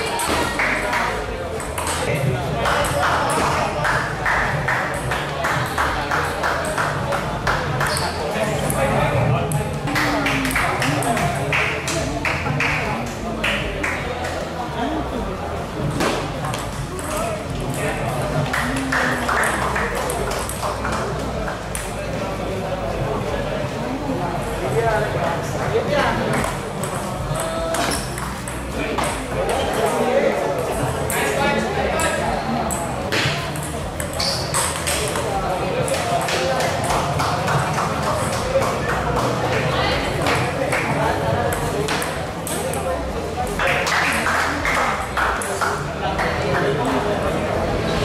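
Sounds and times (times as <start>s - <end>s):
chatter of voices: 0.0s - 48.0s
table tennis ball clicks: 32.0s - 38.4s.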